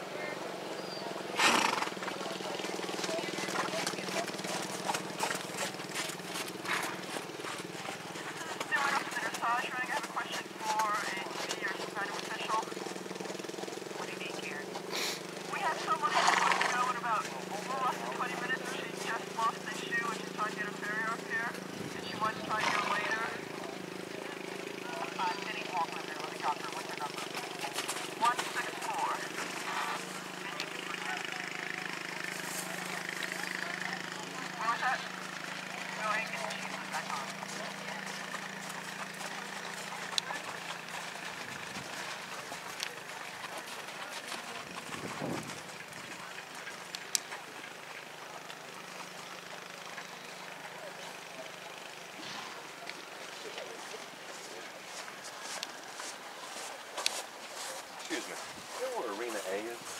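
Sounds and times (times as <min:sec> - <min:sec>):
distant people talking: 0:00.0 - 0:59.9.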